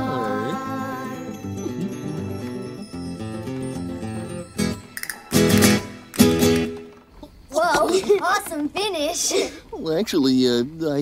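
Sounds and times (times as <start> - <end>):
acoustic guitar playing: 0.0 - 7.2
loud guitar chords: 4.6 - 6.9.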